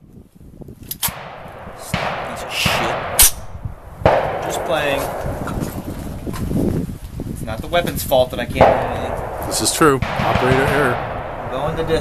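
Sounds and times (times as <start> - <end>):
rifle shot crack: 1.0 - 6.8, 8.6 - 12.0.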